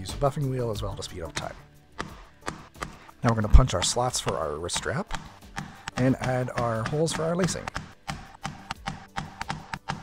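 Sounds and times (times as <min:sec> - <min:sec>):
background music: 0:00.0 - 0:10.0
metal punch tapping leather: 0:01.3 - 0:10.0.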